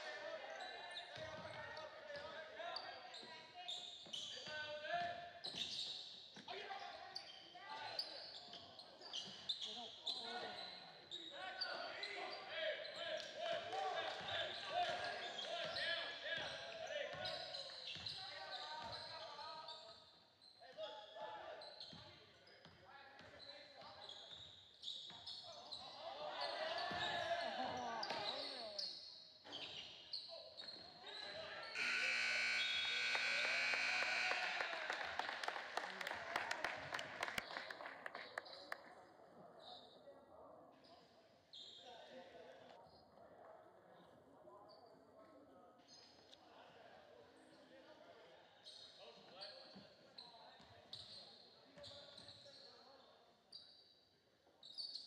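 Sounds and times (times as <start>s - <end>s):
scoreboard horn blast: 31.8s - 36.2s
crowd shouting and cheering: 31.8s - 37.5s.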